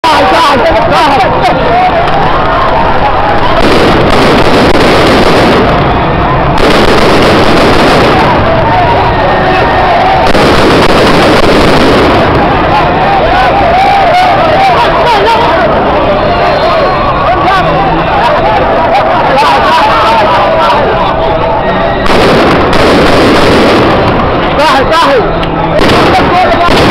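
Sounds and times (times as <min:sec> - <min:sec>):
voices shouting: 0:00.0 - 0:26.9
loud gunfire crackle: 0:03.4 - 0:08.9, 0:10.0 - 0:12.7, 0:22.0 - 0:24.6, 0:25.8 - 0:26.9.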